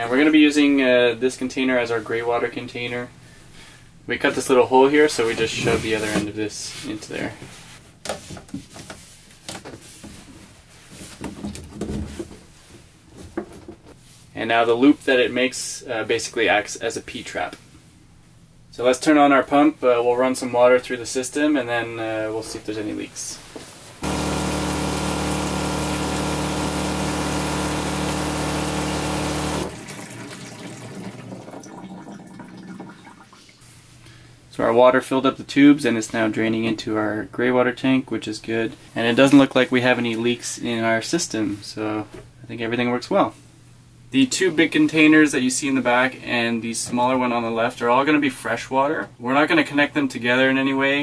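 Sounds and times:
plastic knocks and rustles: 0:08.0 - 0:14.0
water pump humming: 0:24.0 - 0:32.9.

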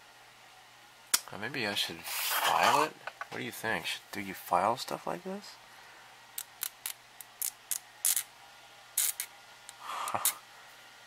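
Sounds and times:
needle file rasping on metal: 0:02.1 - 0:02.9.

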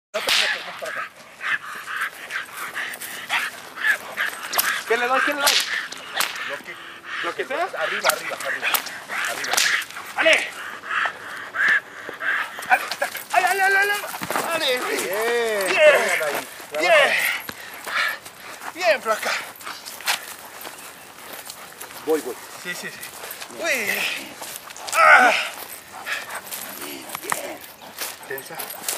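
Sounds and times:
shuffling footsteps on leaves: 0:00.5 - 0:28.9
dog paws scuffing leaves: 0:11.5 - 0:28.9.

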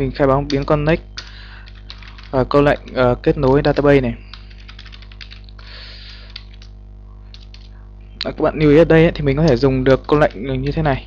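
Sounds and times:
keyboard typing: 0:00.4 - 0:07.7, 0:09.4 - 0:10.9
microphone buzz: 0:05.5 - 0:08.5.

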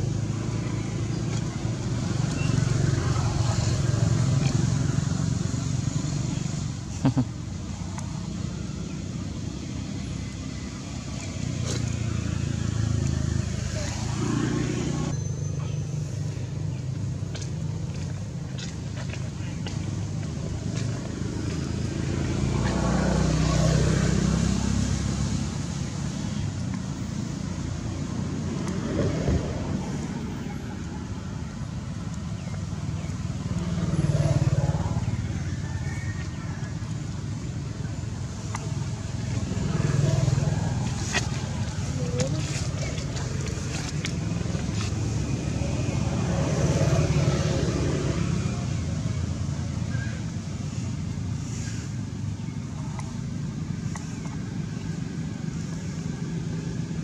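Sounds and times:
distant road traffic rumble: 0:00.0 - 0:57.0.

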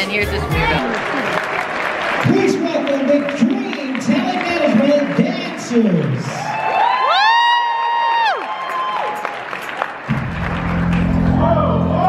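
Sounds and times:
dance track with heavy bass: 0:00.0 - 0:00.8
audience applauding: 0:00.0 - 0:12.0.

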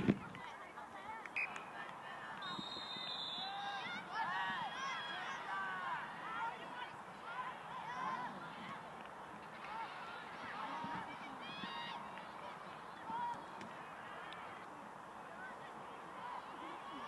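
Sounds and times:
distant people shouting: 0:02.4 - 0:08.8, 0:09.6 - 0:14.7.

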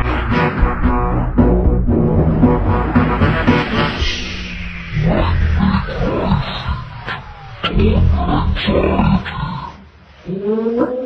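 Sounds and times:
rising drawn-out vocal tone: 0:00.0 - 0:11.0.

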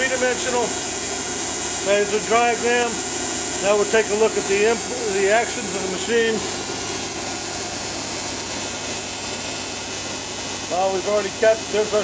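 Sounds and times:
tesla coil rig running: 0:00.0 - 0:12.0.

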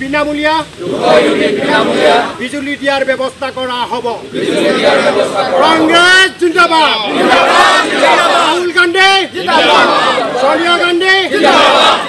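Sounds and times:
group of men shouting: 0:00.8 - 0:02.4, 0:04.3 - 0:06.0, 0:06.9 - 0:12.0.

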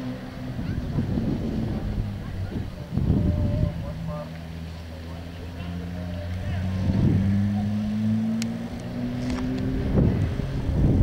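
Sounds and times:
wind buffeting microphone: 0:00.0 - 0:04.3, 0:06.2 - 0:11.0
motor vehicle engine running: 0:00.0 - 0:11.0.

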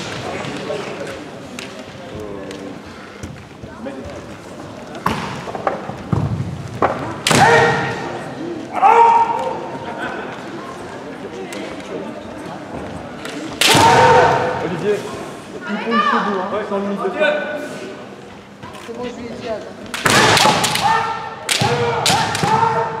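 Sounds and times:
loud drawn-out shouts: 0:07.2 - 0:09.9, 0:13.6 - 0:14.6, 0:20.3 - 0:23.0.

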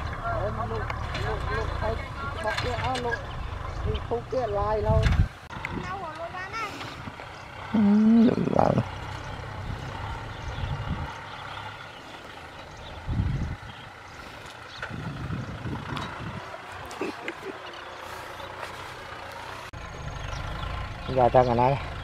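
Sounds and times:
tractor diesel engine under load: 0:00.0 - 0:22.0.

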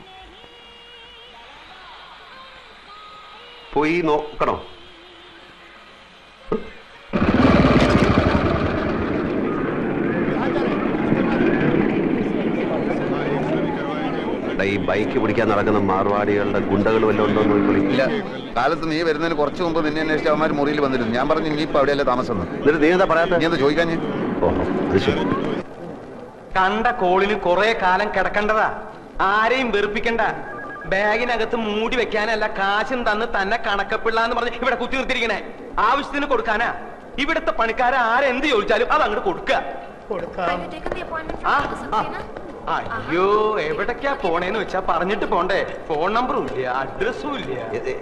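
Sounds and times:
telephone ringing faintly: 0:30.1 - 0:31.8.

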